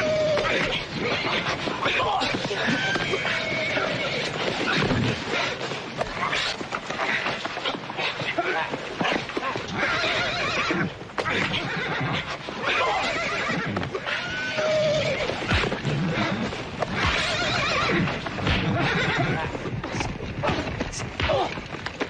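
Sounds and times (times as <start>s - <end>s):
hooves stamping: 0.0s - 22.0s
horses whinnying: 0.0s - 22.0s.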